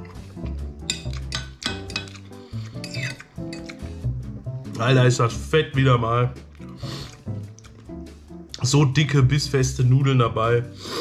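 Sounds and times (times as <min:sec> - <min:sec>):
background music with bass line: 0:00.0 - 0:11.0
fork clinking against plate: 0:00.8 - 0:03.9.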